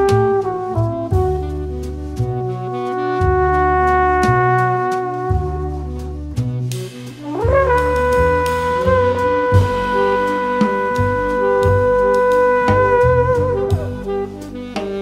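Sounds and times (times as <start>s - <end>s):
alto saxophone: 0.0s - 15.0s
trombone: 0.0s - 15.0s
walking double bass line: 0.0s - 15.0s.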